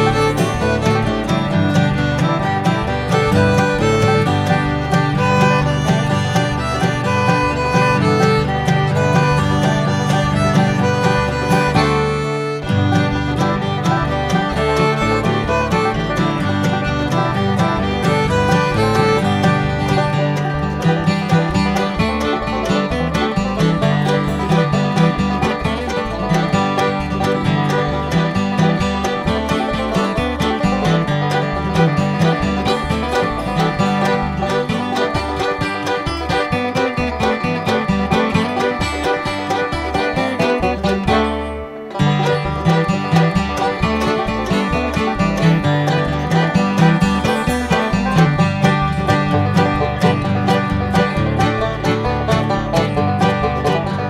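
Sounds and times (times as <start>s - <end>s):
bluegrass instrumental music: 0.0s - 54.0s.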